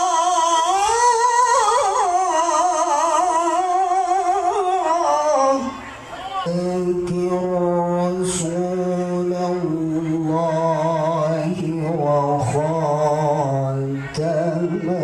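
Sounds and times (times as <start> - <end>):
man reciting melodically: 0.0 - 15.0.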